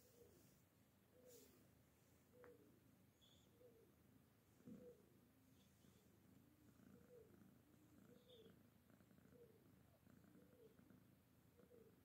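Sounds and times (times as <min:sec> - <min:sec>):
cat purring: 0:02.4 - 0:12.0.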